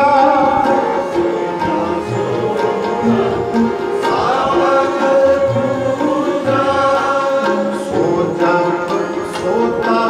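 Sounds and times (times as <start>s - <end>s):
bowed string instruments: 0.0s - 10.0s
tabla: 0.0s - 10.0s
voices singing a devotional hymn: 0.0s - 10.0s.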